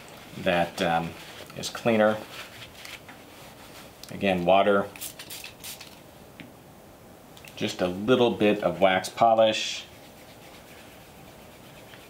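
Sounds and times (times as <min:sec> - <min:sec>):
spray bottle spritzing: 0:05.0 - 0:06.0.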